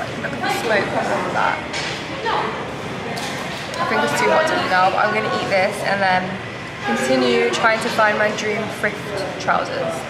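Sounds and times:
woman speaking: 0.0s - 2.5s, 3.8s - 10.0s
busy eatery background noise: 0.0s - 10.0s.

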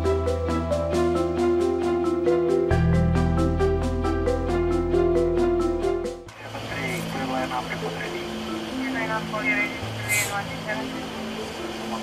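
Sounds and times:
low steady cockpit hum: 6.3s - 12.0s
short hiss: 10.0s - 10.4s.

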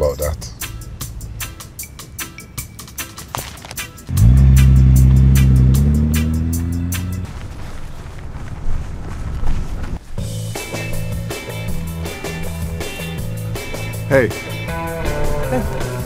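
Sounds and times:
sports car engine revving: 4.1s - 7.3s
rock beat with guitar: 10.3s - 16.0s.

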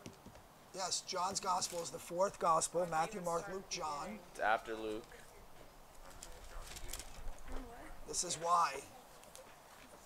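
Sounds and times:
murmured voices: 1.4s - 9.7s
pages rustling: 1.5s - 2.0s, 6.1s - 7.4s.

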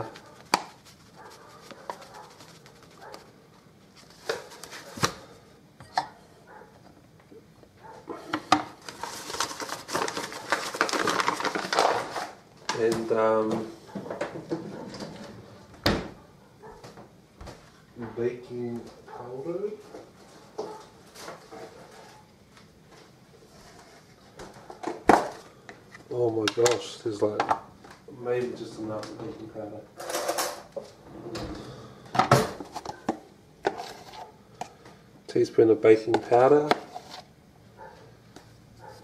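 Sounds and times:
paper bag rustling: 0.0s - 5.3s, 8.8s - 13.1s.

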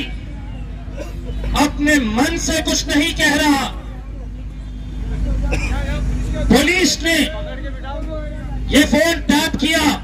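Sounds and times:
man speaking into a microphone: 1.4s - 4.0s, 5.2s - 10.0s.

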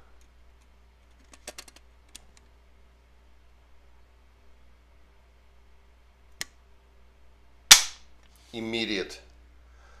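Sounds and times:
sharp snap of hammer falling: 7.7s - 8.0s.

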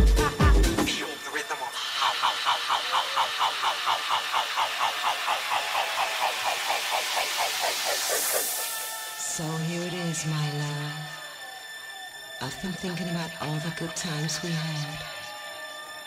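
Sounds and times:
pulsing synth chord: 0.0s - 16.0s
white-noise sweep: 0.3s - 11.9s.

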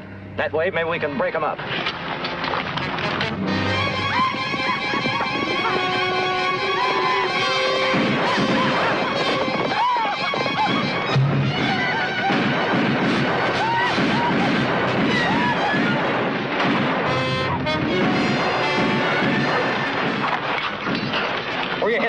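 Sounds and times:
orchestral score: 1.9s - 16.3s, 17.0s - 20.7s
gunshots: 2.9s - 22.0s
men yelling and whooping: 8.5s - 12.6s, 13.5s - 16.0s.

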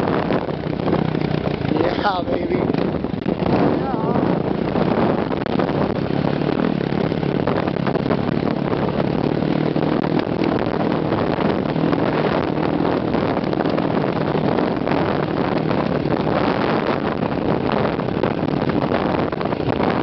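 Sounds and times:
dirt bike engine under throttle: 0.0s - 20.0s.

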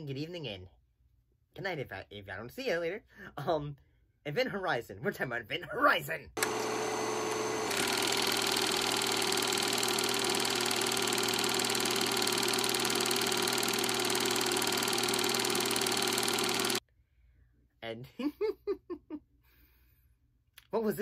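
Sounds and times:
film projector clattering: 6.4s - 16.8s.

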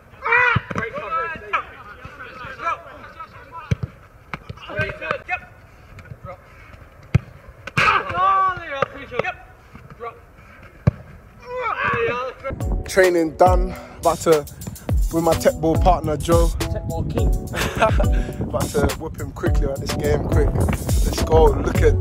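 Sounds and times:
distant shouts: 0.0s - 6.7s, 7.3s - 12.5s
football kicked thuds: 3.6s - 5.2s, 10.8s - 11.2s.

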